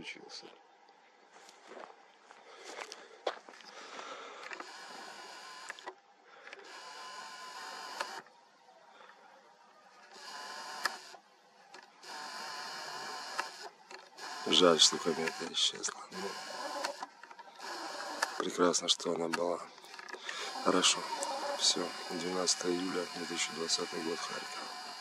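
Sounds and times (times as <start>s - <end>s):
camera zoom lens motor whining: 4.4s - 8.3s, 10.0s - 25.0s.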